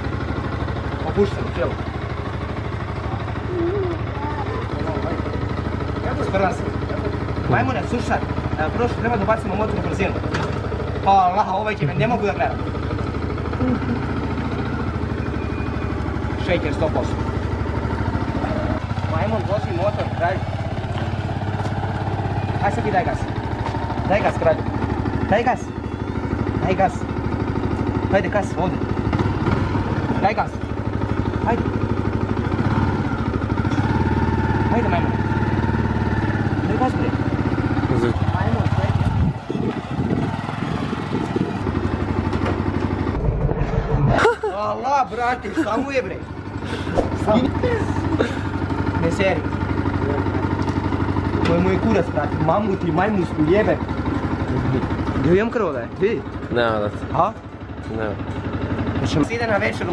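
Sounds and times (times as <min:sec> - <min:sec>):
motorcycle engine idling: 0:00.0 - 0:59.9.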